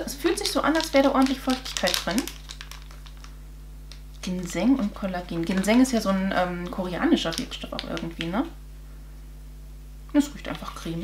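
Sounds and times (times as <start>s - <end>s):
foil sachet crinkling: 0.0s - 8.4s
faint steady hum: 0.0s - 11.0s.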